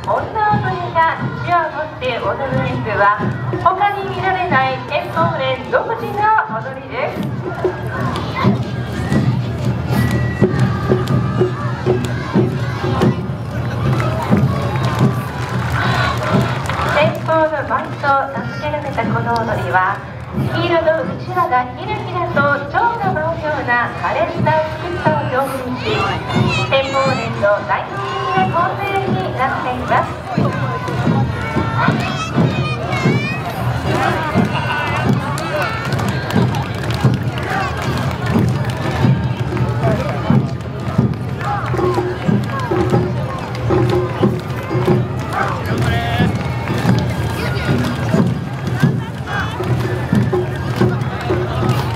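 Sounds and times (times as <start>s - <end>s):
dancers shouting calls: 0.0s - 40.3s
drums beating: 0.0s - 51.9s
voices: 0.0s - 51.9s.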